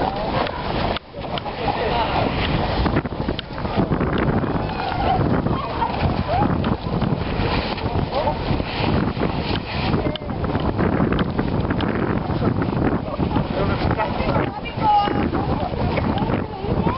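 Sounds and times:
wind buffeting microphone: 0:00.0 - 0:16.9.

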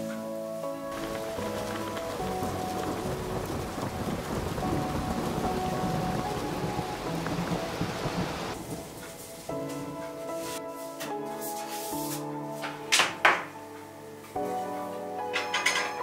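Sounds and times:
soft music: 0:00.0 - 0:16.0
heavy rain: 0:00.3 - 0:10.6
low rumble of thunder: 0:00.9 - 0:09.4.

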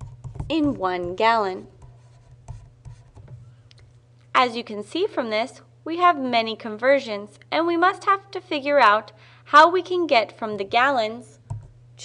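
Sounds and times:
pen scratching and tapping: 0:00.0 - 0:03.4
low steady hum: 0:00.0 - 0:12.0.

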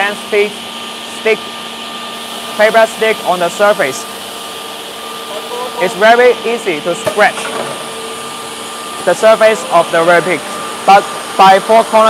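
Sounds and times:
machine whirring hum: 0:00.0 - 0:12.0.

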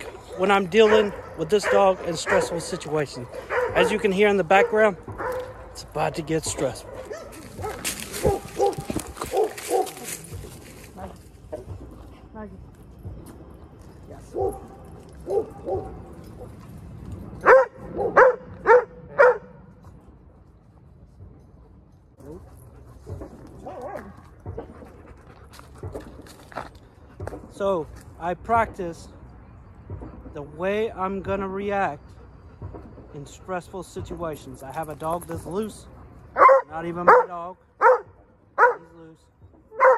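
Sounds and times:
dog barking: 0:00.2 - 0:05.7, 0:06.8 - 0:10.0, 0:14.3 - 0:16.0, 0:17.4 - 0:19.6, 0:36.4 - 0:38.9
scuffling sounds: 0:06.6 - 0:11.4
dog panting: 0:22.2 - 0:27.4.

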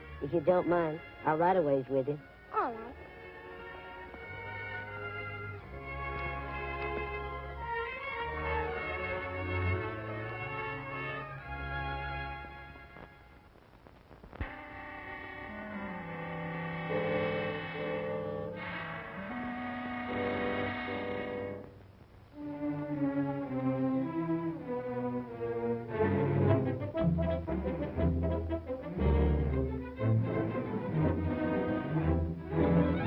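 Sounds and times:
orchestral music with brass and strings: 0:00.0 - 0:13.0, 0:14.6 - 0:21.7, 0:22.4 - 0:33.0.

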